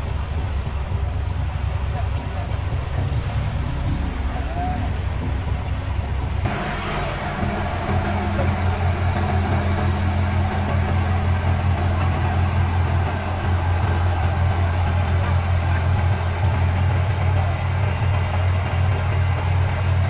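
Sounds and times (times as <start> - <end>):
diesel engine droning: 0.0 - 20.0.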